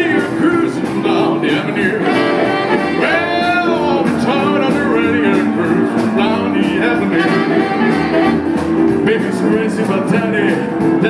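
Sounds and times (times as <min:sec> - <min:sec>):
saxophone: 0:00.0 - 0:09.8
rhythm and blues band playing: 0:00.0 - 0:11.0.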